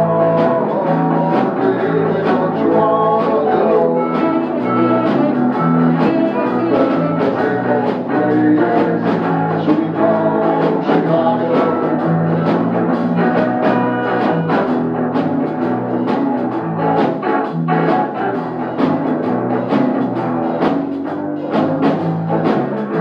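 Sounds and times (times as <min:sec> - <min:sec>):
drum kit beat: 0:00.0 - 0:23.0
electric bass: 0:00.0 - 0:23.0
electric guitar: 0:00.0 - 0:23.0.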